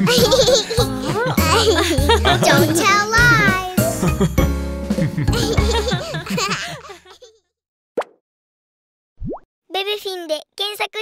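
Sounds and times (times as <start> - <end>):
cartoon baby voice speaking: 2.6 - 3.8.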